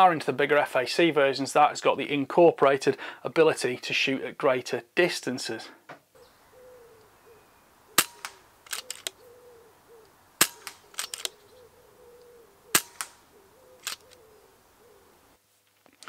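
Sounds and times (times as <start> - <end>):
air rifle shots: 8.0 - 9.2, 10.4 - 11.4, 12.7 - 14.1
rifle lever clicks: 8.0 - 9.2, 10.4 - 11.4, 13.8 - 14.2.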